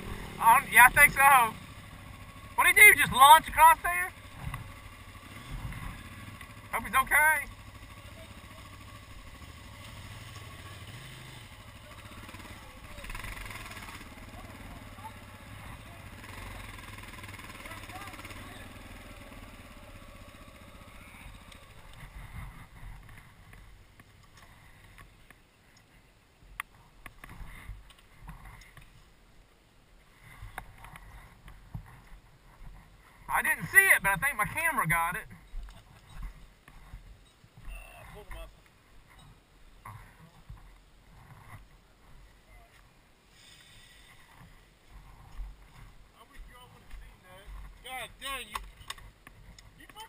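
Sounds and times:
motorcycle engine running: 0.0 - 25.3, 30.1 - 42.8, 43.8 - 50.0.

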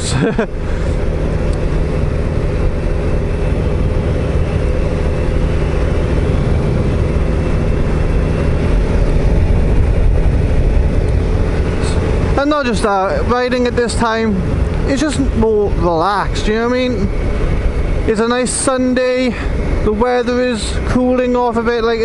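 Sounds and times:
motorcycle engine cruising: 0.0 - 22.0
wind and road noise: 0.0 - 22.0.

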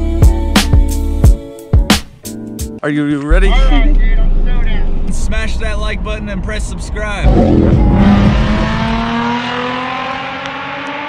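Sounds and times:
vehicle engine running: 3.3 - 9.4.

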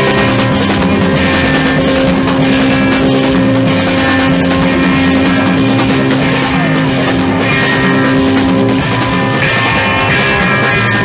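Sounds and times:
distorted guitar note held: 0.0 - 11.0
loud rock music: 0.0 - 11.0.

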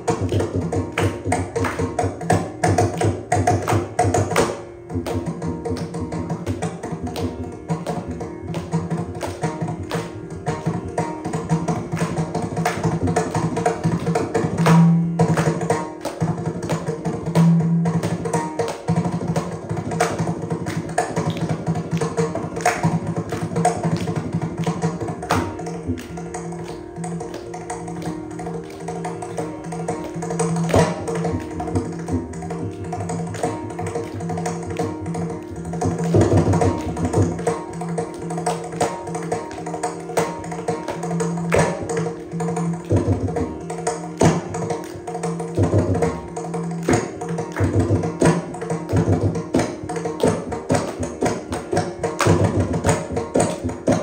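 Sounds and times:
mridangam drumming: 0.0 - 54.0.

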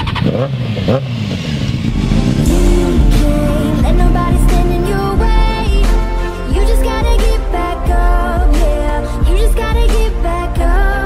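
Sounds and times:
motorcycle engine running: 0.0 - 8.0
heavy bass music: 1.5 - 8.4.

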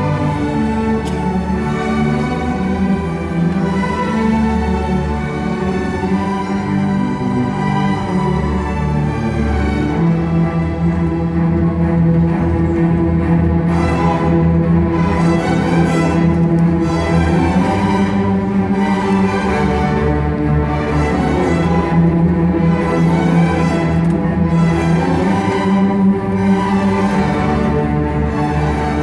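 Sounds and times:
string orchestra playing: 0.0 - 29.0.

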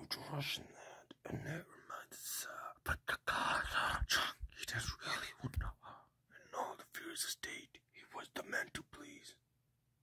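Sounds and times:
person whispering: 0.0 - 9.4.

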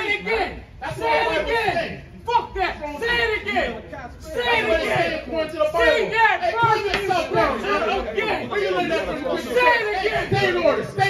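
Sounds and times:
men arguing: 0.0 - 11.0.

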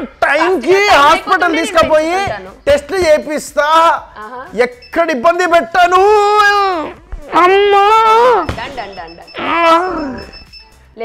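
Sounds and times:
drawn-out vocal cry: 9.4 - 10.4.

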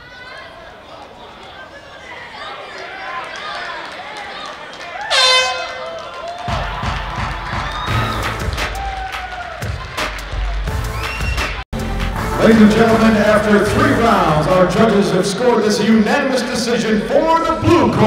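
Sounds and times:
crowd shouting: 0.0 - 11.1
loud horn blast: 5.1 - 5.9.

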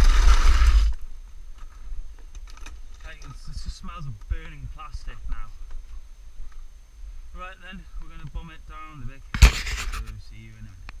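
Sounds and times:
low hum: 0.0 - 11.0
man talking: 3.0 - 5.6, 7.3 - 9.4, 10.0 - 10.8.

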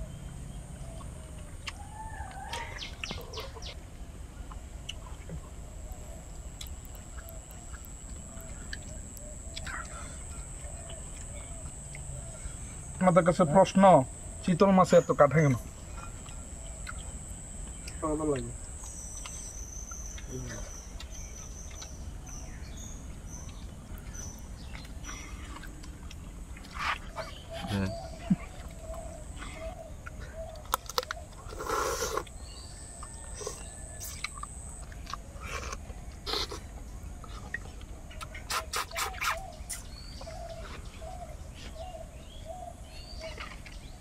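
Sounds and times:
faint bird calls: 0.0 - 25.8, 26.7 - 44.0
wet eating clicks and lip smacks: 1.0 - 3.8, 4.4 - 12.2, 16.2 - 22.4, 28.2 - 32.4, 33.0 - 39.9
slurping: 31.4 - 32.4, 35.4 - 39.9.

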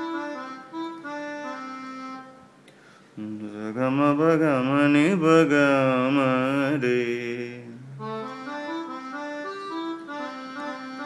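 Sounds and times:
person singing with vibrato: 3.2 - 8.9.

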